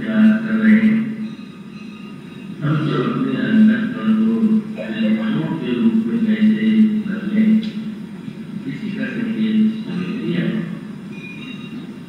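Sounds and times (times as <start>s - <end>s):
man speaking: 0.0s - 1.1s, 2.6s - 7.7s, 8.6s - 10.8s.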